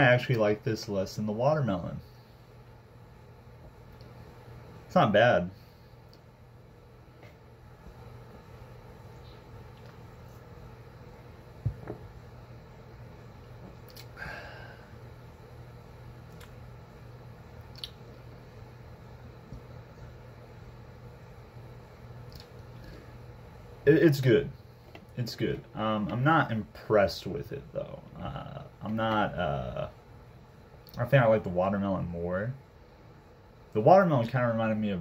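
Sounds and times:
steady low hum: 0:00.0 - 0:35.0
soft thump: 0:11.6 - 0:12.1.

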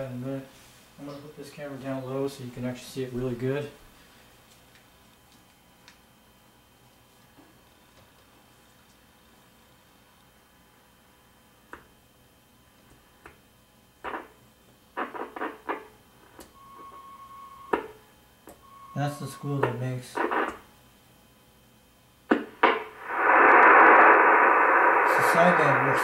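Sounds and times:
steady high tone: 0:23.0 - 0:26.0.

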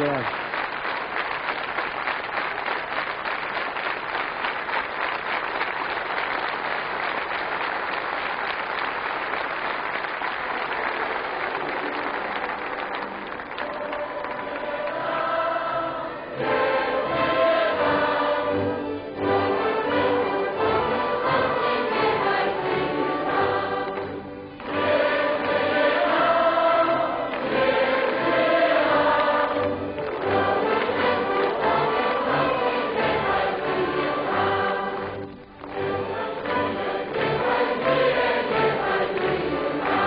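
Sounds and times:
choir singing: 0:13.6 - 0:40.0.

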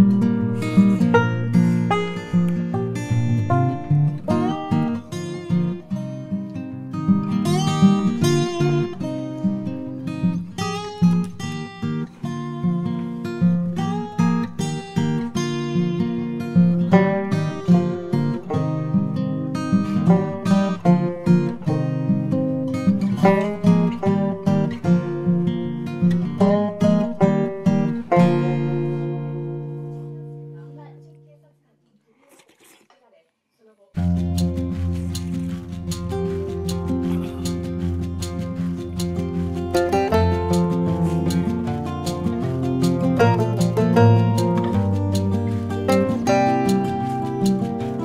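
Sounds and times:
acoustic guitar plucking: 0:00.0 - 0:31.6, 0:34.0 - 0:48.0.

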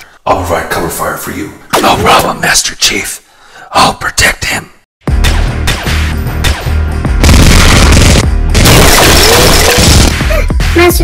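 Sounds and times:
background music: 0:05.0 - 0:11.0
gunfire bursts: 0:07.2 - 0:10.2.

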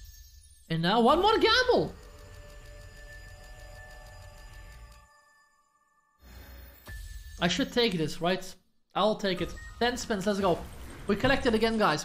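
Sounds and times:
game background music: 0:00.0 - 0:12.0.

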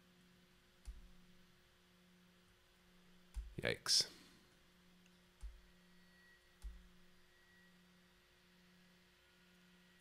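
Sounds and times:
faint low hum: 0:00.0 - 0:10.0
computer mouse clicks: 0:00.8 - 0:01.2, 0:05.0 - 0:05.6, 0:06.6 - 0:06.9.

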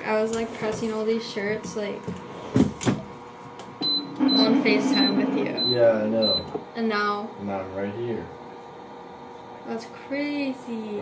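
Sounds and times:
high electronic beep: 0:03.8 - 0:06.5.

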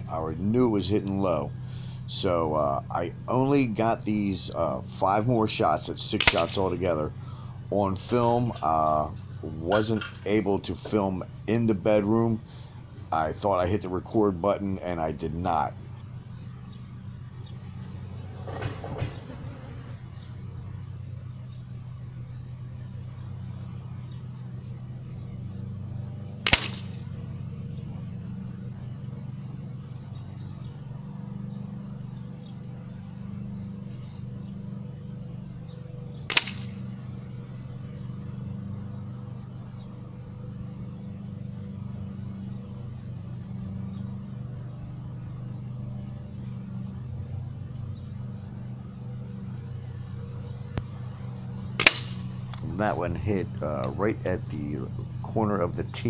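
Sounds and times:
steady low hum: 0:00.0 - 0:56.0
pellets cracking into paper target: 0:06.2 - 0:06.7, 0:26.4 - 0:27.0, 0:36.3 - 0:36.8, 0:51.8 - 0:52.3.

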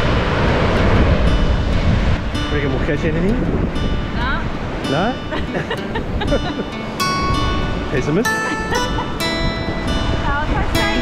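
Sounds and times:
surf breaking on a beach: 0:00.0 - 0:11.0
wind rumbling on microphone: 0:00.0 - 0:11.0.

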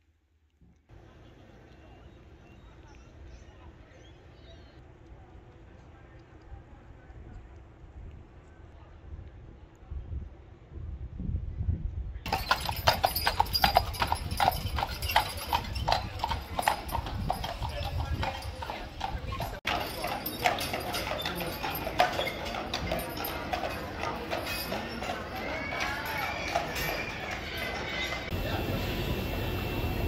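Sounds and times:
horse hooves clip-clopping on pavement: 0:12.3 - 0:30.0.

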